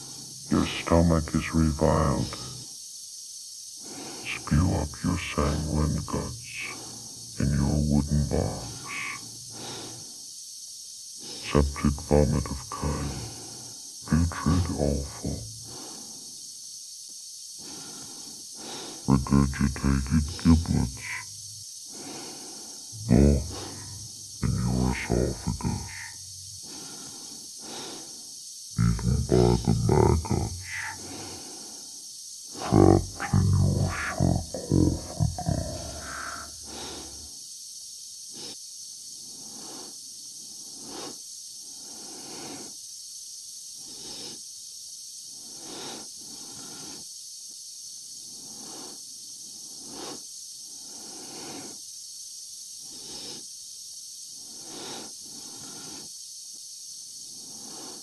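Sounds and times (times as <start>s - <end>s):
faint breathing in helmet: 0.0s - 0.6s, 3.8s - 5.0s, 5.7s - 10.3s, 12.4s - 14.1s, 14.9s - 16.6s, 17.6s - 19.2s, 20.8s - 28.4s, 30.5s - 33.2s, 48.3s - 51.8s
steady hiss: 0.0s - 58.0s.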